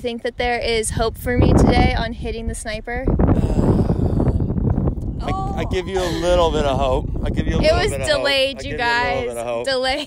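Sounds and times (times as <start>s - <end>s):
wind buffeting microphone: 0.0s - 10.0s
person sighing: 3.3s - 4.6s, 5.2s - 6.5s.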